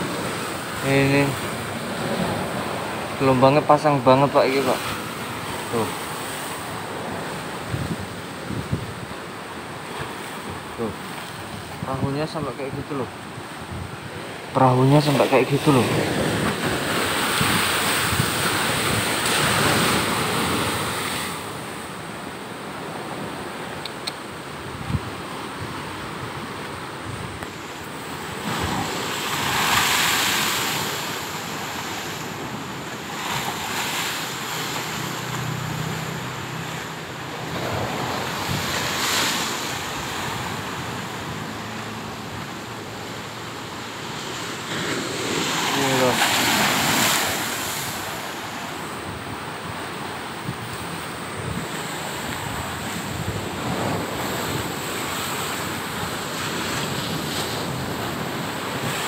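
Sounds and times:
sea surf crashing on shore: 0:00.0 - 0:59.0.

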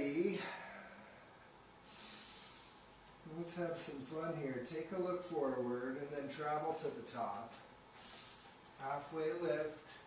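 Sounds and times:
man breathing through nose: 0:01.8 - 0:03.0, 0:08.0 - 0:08.7.

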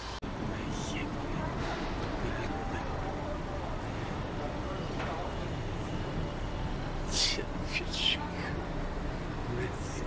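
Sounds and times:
pedestrians' voices: 0:00.1 - 0:10.0.

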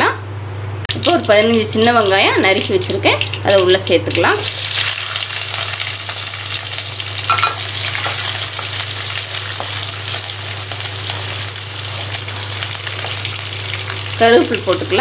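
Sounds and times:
shallots sizzling in hot oil: 0:00.9 - 0:15.0.

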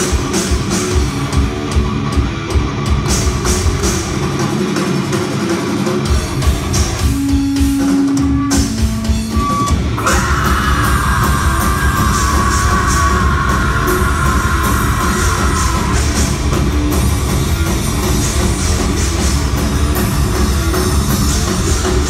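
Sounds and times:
live heavy metal band: 0:00.0 - 0:22.0.

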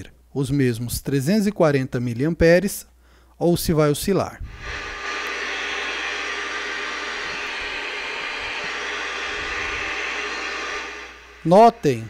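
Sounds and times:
radio static hiss: 0:04.5 - 0:12.0.

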